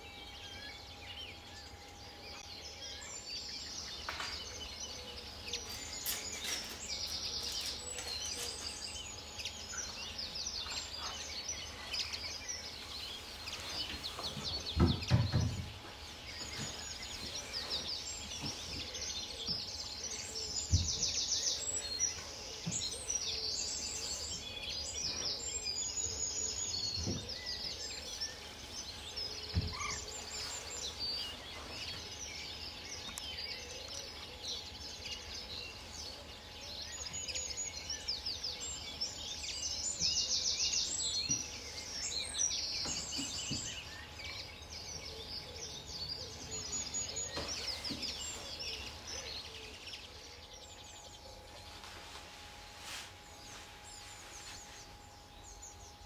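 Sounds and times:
songbirds trilling and twittering: 0.0s - 56.0s
steady outdoor hiss: 0.0s - 56.0s.

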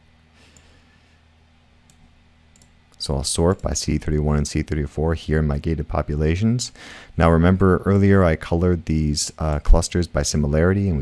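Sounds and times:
low electrical hum: 0.0s - 11.0s
faint mouse clicks: 1.9s - 2.8s.

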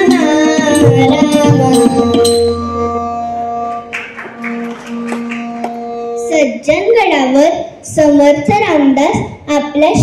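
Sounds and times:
harmonium notes: 0.0s - 7.8s.

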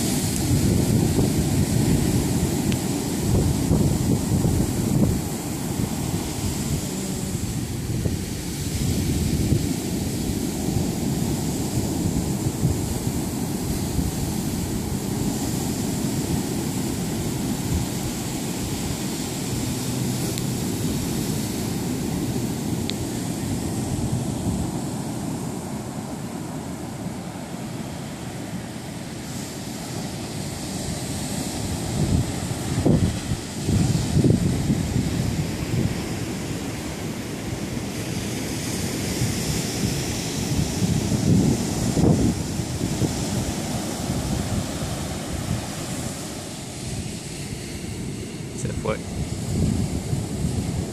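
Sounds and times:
ocean surf on beach: 0.0s - 50.9s
wind buffeting microphone: 0.0s - 50.9s.

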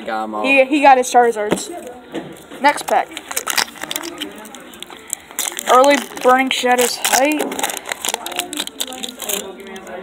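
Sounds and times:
faint background chatter: 0.0s - 10.0s
foil wrapper crinkling: 2.7s - 10.0s.

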